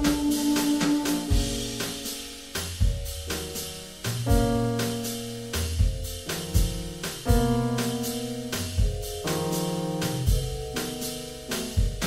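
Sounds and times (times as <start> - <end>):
keyboard chords: 0.0 - 2.0
soft drum-kit hits: 0.0 - 8.0, 8.6 - 12.0.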